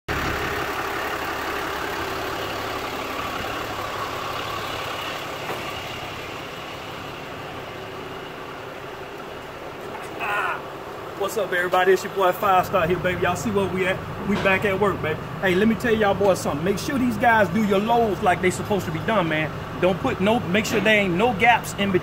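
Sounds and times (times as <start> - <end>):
truck engine idling: 0.1 - 22.0.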